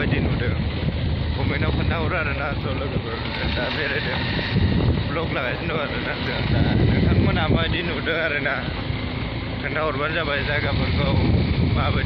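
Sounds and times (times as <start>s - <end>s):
motorcycle rumble: 0.0s - 12.0s.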